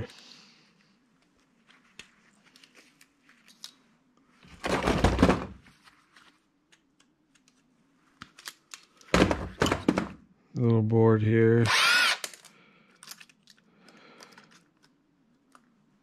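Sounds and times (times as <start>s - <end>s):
small parts clicking and tapping: 8.2s - 9.1s, 12.2s - 15.8s
parts clattering: 8.2s - 10.2s, 12.2s - 15.0s.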